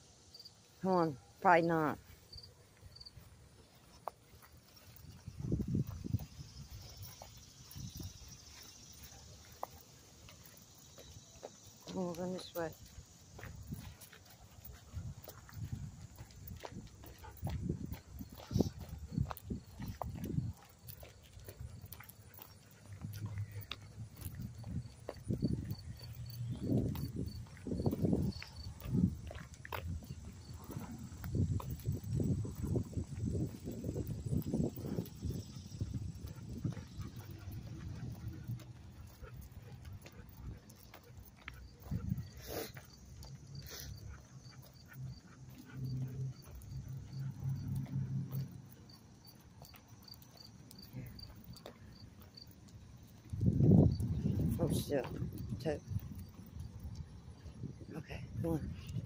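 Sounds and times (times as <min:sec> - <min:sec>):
footsteps on gravel: 0:01.7 - 0:44.0
dog panting and sniffing: 0:12.5 - 0:57.7.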